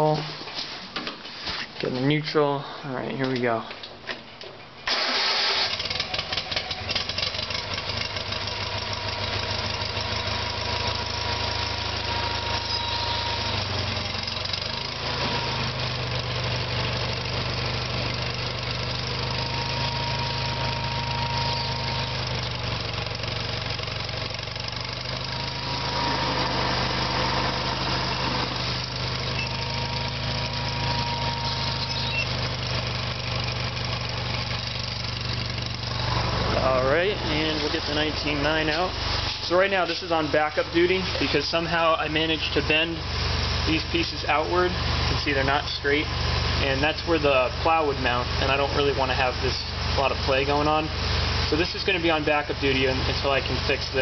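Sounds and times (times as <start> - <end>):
garden tractor engine running: 4.4 - 54.0.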